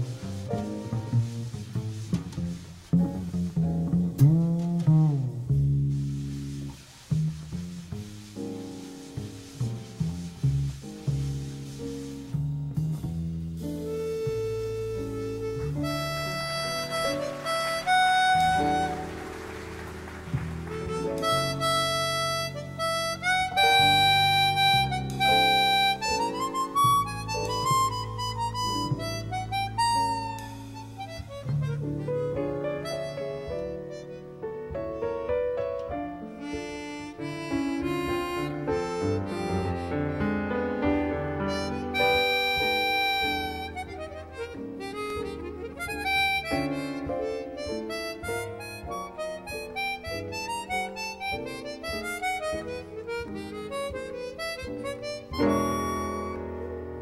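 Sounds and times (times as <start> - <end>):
plucked double bass: 0.0 - 19.1
harmonica melody: 13.6 - 35.4, 36.0 - 57.0.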